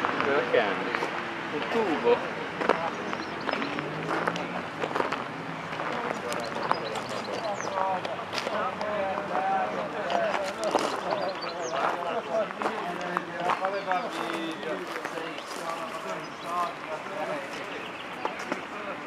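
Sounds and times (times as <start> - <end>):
people talking indistinctly: 0.0 - 19.0
footsteps crunching on gravel: 10.0 - 18.6.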